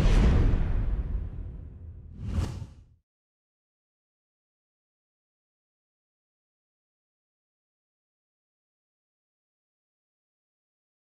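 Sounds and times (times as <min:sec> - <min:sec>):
whoosh: 0:01.3 - 0:03.0
short swoosh: 0:02.1 - 0:02.9.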